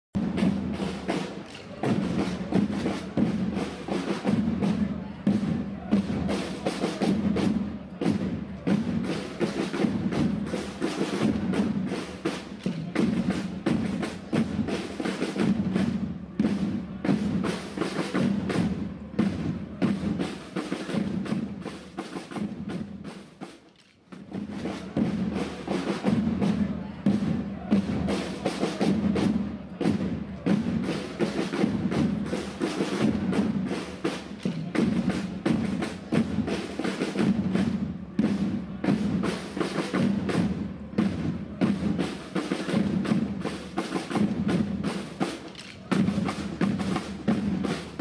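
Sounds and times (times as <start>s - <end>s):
marching drums beating: 0.2s - 48.0s.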